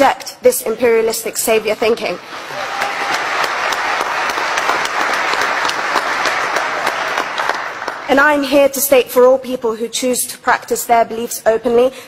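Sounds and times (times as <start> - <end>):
audience applauding: 2.3 - 8.1.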